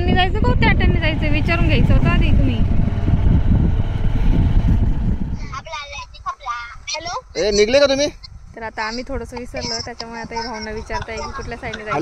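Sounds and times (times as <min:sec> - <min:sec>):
motorcycle road rumble: 0:00.0 - 0:06.9, 0:08.2 - 0:12.0
wind buffeting microphone: 0:00.0 - 0:12.0
person speaking: 0:09.4 - 0:12.0.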